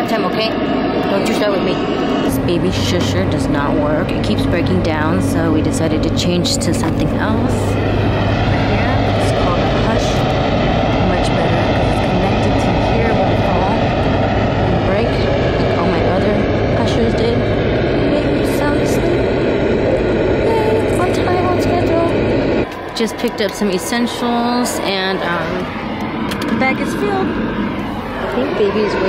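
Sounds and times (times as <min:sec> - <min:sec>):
car road noise: 0:00.0 - 0:29.0
white noise machine: 0:00.0 - 0:29.0.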